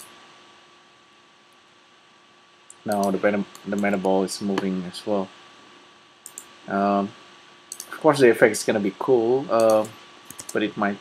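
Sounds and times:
faint hiss: 0.0 - 11.0
thin constant hum: 0.0 - 11.0
sharp click: 2.7 - 4.7, 6.2 - 6.5, 7.7 - 8.0, 9.6 - 10.6.

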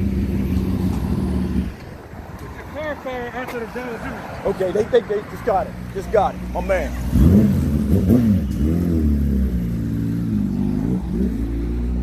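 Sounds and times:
motorcycle engine idling: 0.0 - 1.8.

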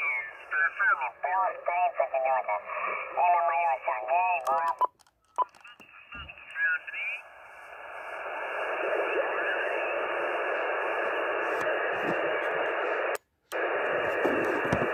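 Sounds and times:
garbled radio voice: 0.0 - 7.2, 8.9 - 13.1, 14.0 - 14.9
radio static hiss: 0.0 - 14.9.

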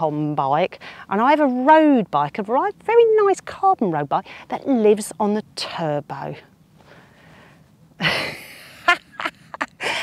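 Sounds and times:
woman laughing: 8.0 - 10.0.

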